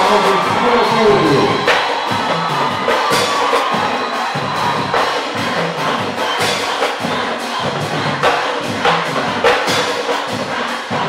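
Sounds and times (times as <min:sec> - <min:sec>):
crowd cheering: 0:00.0 - 0:11.0
drum strokes: 0:00.0 - 0:11.0
percussion marching band: 0:00.0 - 0:11.0.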